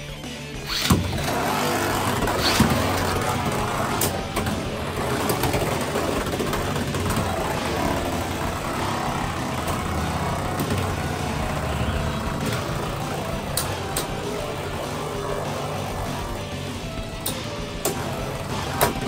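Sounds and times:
spinning tops whirring: 0.6s - 19.0s.

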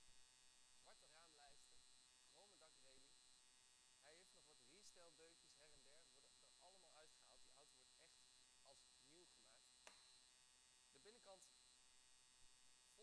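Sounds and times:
electrical hum with high whine: 0.0s - 13.0s
faint talking: 0.9s - 1.7s, 4.0s - 9.6s.

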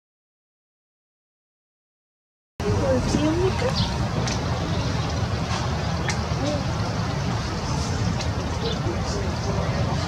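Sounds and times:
wind rumble on microphone: 2.6s - 10.0s.

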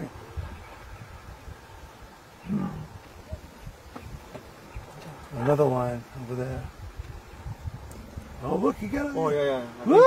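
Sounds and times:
lion growl: 2.4s - 3.0s.

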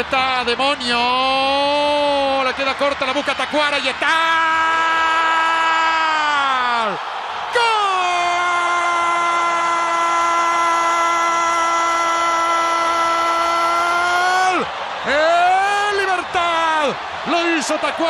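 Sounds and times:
commentator's drawn-out goal cry: 3.4s - 18.0s.

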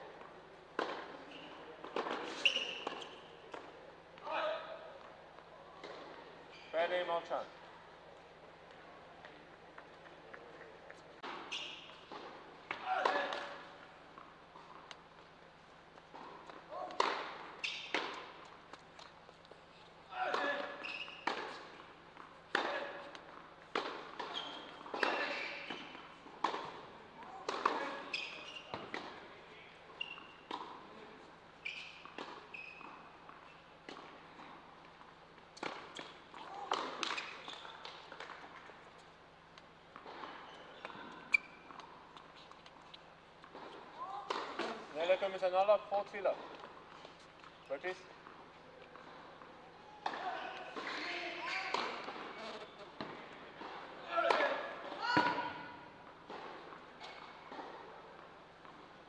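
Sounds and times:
tennis ball bouncing on hard court: 16.1s - 18.8s, 20.3s - 26.8s, 27.4s - 29.2s, 35.6s - 38.7s
tennis ball hit by racquets: 16.1s - 18.8s, 20.2s - 21.9s, 22.5s - 29.2s, 35.6s - 38.7s, 43.4s - 44.8s.

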